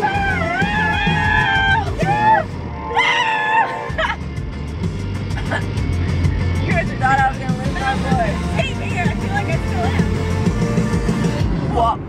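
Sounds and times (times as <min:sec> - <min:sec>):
car road rumble: 0:00.0 - 0:12.0.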